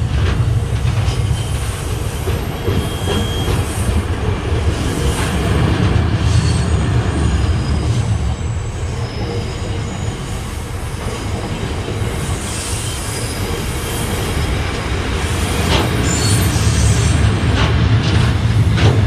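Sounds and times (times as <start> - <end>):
train wheels rumbling on rail: 0.0 - 19.0
thin wheel squeals: 2.7 - 3.9, 6.3 - 10.5, 16.0 - 17.1.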